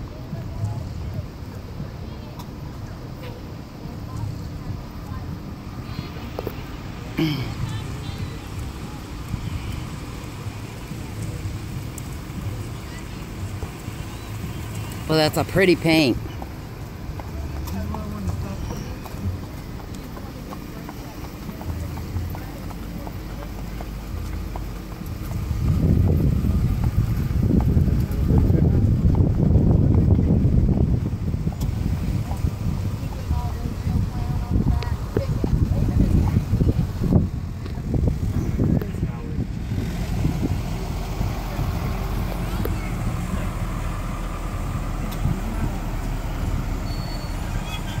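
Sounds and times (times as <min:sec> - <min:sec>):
horse hooves on wet pavement: 0:00.0 - 0:48.0
truck engine rumbling: 0:00.0 - 0:48.0
wind buffeting microphone: 0:16.2 - 0:48.0.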